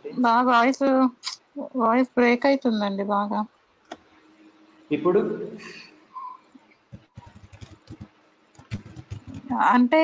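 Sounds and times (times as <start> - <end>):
computer keyboard typing: 6.9 - 9.6.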